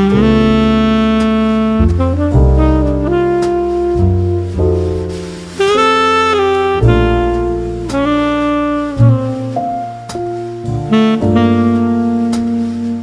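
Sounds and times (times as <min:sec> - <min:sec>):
jazz bass line: 0:00.0 - 0:13.0
saxophone long notes: 0:00.0 - 0:13.0.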